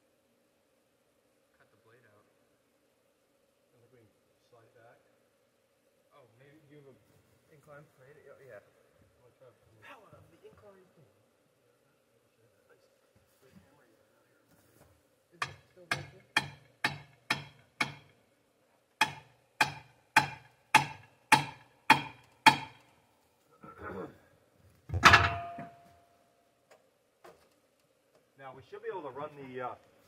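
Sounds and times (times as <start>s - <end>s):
hammer striking wedge: 15.4s - 18.1s, 19.0s - 22.8s
metallic clank with ring: 25.0s - 26.0s.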